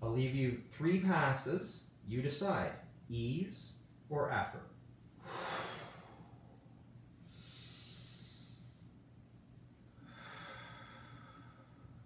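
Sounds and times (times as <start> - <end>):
person breathing hard: 5.2 - 6.6, 7.2 - 8.9, 10.0 - 12.0.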